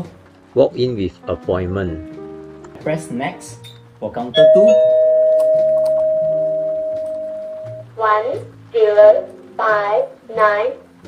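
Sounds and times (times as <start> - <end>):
electronic chime tone: 4.4 - 7.8.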